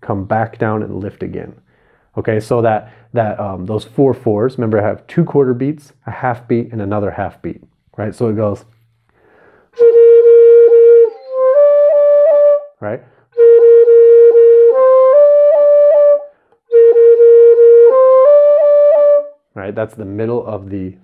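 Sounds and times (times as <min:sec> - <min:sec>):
bamboo flute melody: 0:09.8 - 0:12.8, 0:13.4 - 0:19.4.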